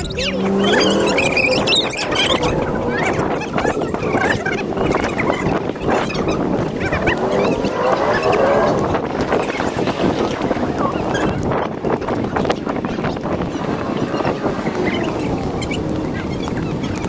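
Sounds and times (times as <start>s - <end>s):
squeaky chirps: 0.0s - 9.7s, 12.2s - 17.0s
street noise: 0.0s - 17.0s
wind rumbling on microphone: 0.0s - 17.0s.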